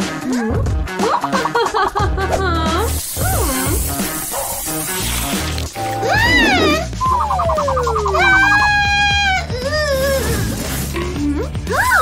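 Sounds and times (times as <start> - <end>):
warbling trill: 5.8 - 9.1
cartoon character crying out: 6.0 - 6.9, 7.6 - 10.5
descending cartoon whistle: 6.0 - 9.4.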